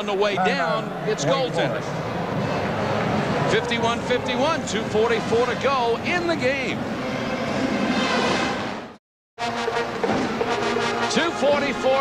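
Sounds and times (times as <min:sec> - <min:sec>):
arena noise: 0:00.0 - 0:07.9
brass-led music: 0:02.3 - 0:06.0, 0:06.9 - 0:12.0.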